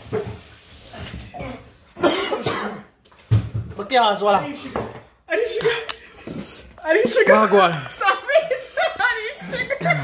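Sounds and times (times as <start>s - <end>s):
person coughing hard: 2.0s - 3.0s.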